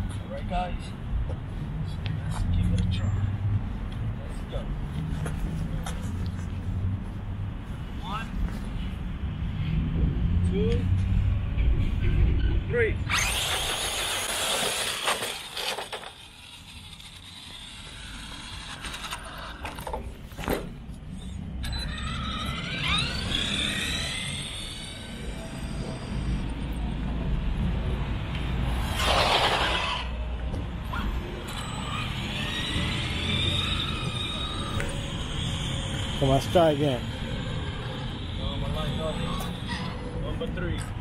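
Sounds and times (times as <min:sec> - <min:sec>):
electric toy truck motors whining: 0:13.1 - 0:20.0, 0:21.2 - 0:26.8, 0:28.8 - 0:30.2, 0:30.9 - 0:40.2.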